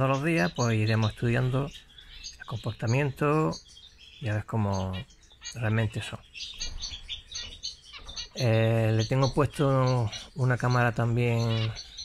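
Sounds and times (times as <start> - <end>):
finches chirping: 0.0 - 12.0.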